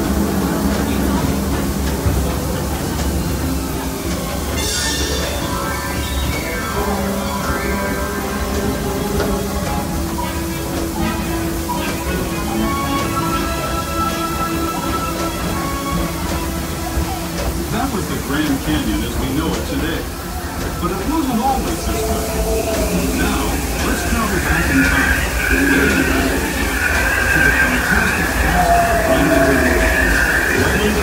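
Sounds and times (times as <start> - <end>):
indistinct voices: 0.0 - 31.0
ride soundtrack music: 0.0 - 31.0
train rumbling along track: 0.0 - 31.0.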